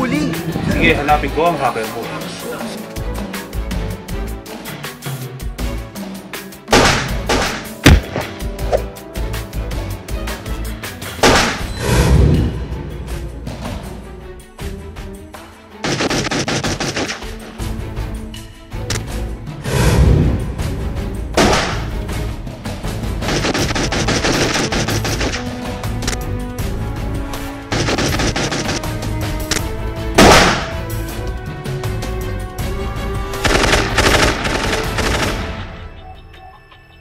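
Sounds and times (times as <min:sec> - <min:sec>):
background music: 0:00.0 - 0:37.0
rapid handgun shots: 0:06.7 - 0:08.4, 0:11.2 - 0:11.7, 0:15.8 - 0:17.4, 0:21.4 - 0:21.9, 0:23.2 - 0:25.6, 0:27.7 - 0:29.6, 0:30.2 - 0:30.9, 0:33.4 - 0:35.7
automatic gunfire: 0:06.8 - 0:08.4, 0:15.8 - 0:17.3, 0:23.3 - 0:25.6, 0:27.7 - 0:29.0, 0:30.2 - 0:30.8, 0:33.4 - 0:35.6.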